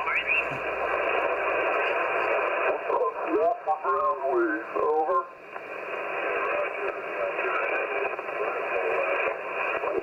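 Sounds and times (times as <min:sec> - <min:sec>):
faint garbled radio voices: 0:00.0 - 0:10.0
radio receiver static hiss: 0:00.0 - 0:10.0.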